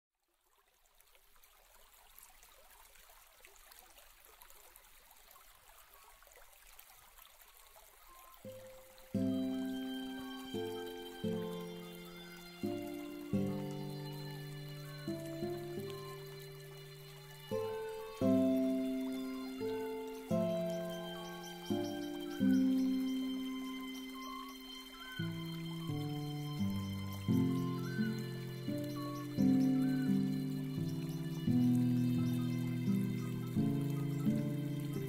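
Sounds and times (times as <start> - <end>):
water trickling: 0.2 - 35.0
calm background music: 8.1 - 35.0.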